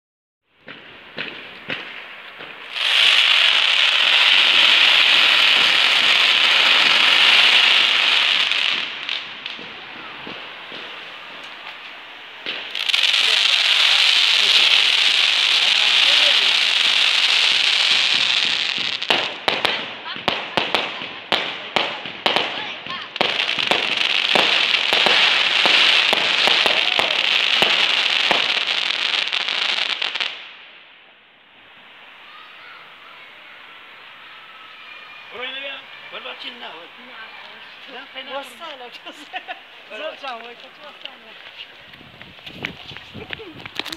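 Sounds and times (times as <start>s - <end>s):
sharp crackling pops: 0.6s - 31.2s, 36.0s - 43.9s
fireworks hissing: 0.6s - 43.9s.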